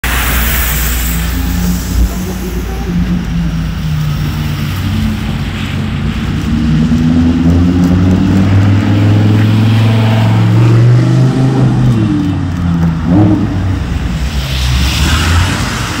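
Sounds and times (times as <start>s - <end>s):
engine revving: 0.0s - 16.0s
sports car engine accelerating: 1.2s - 16.0s.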